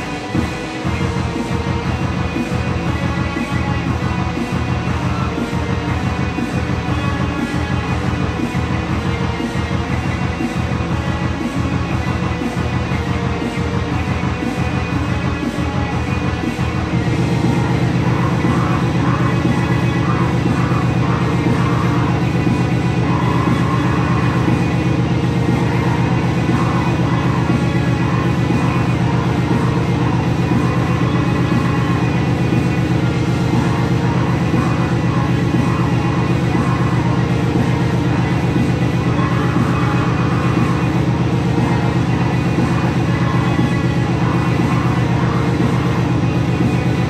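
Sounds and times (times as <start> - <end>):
heavy guitar-driven metal music: 0.0 - 47.0.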